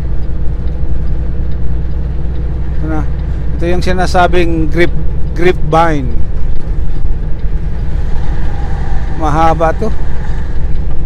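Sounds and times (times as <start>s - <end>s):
diesel truck engine drone: 0.0s - 11.0s
road noise inside cab: 0.0s - 11.0s.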